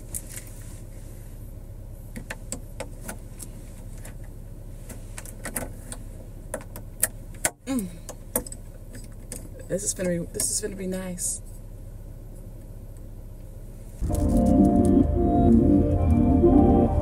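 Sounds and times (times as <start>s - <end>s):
low hum in car cabin: 0.0s - 17.0s.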